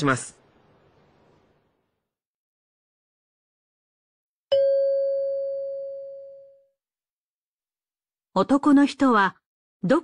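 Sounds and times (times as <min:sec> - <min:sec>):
bell-like chime tone: 0:04.5 - 0:06.7.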